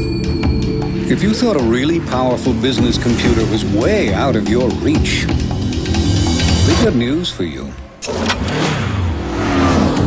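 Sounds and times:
loud rushing engine-like roar: 8.4 - 10.0.

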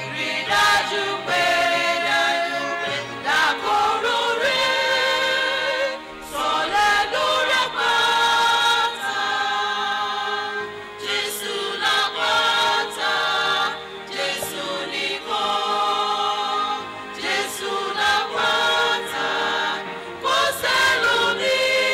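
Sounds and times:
choir singing: 0.0 - 21.9.

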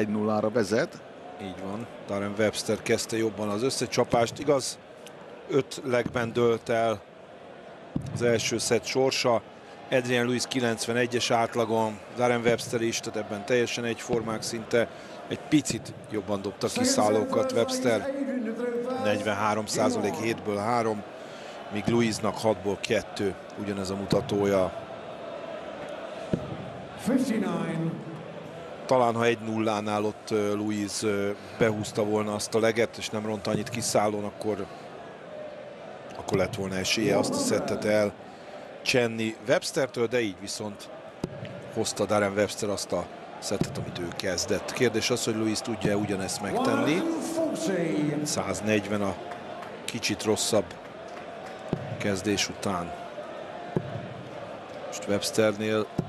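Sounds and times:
murmur of arena crowd: 0.0 - 56.0.

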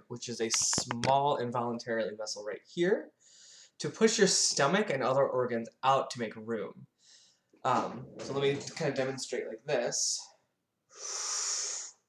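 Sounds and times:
person breathing in deeply: 3.2 - 3.8, 10.9 - 12.0.

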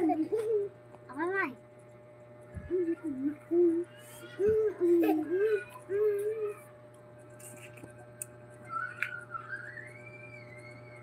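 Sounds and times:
woman humming: 2.6 - 6.7.

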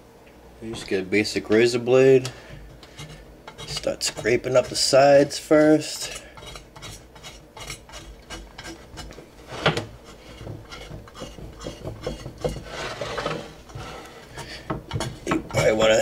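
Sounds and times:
razor blade scraping glass dish: 2.8 - 5.3, 6.0 - 9.2, 10.0 - 15.8.

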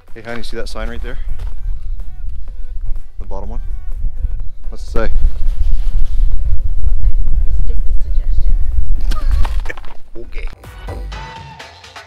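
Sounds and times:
wind buffeting microphone: 0.0 - 10.5.

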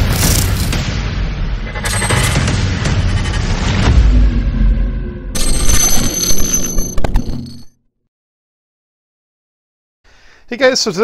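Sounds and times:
ringing electronic sting: 1.6 - 7.7
sharp glitch clicks: 1.7 - 3.6
deep boom: 2.4 - 5.4.

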